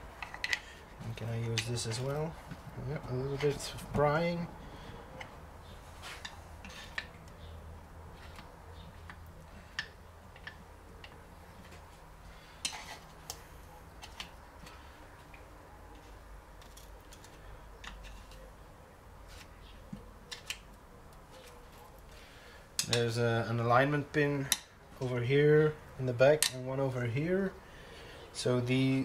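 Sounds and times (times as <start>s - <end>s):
low steady hum: 0.0s - 29.0s.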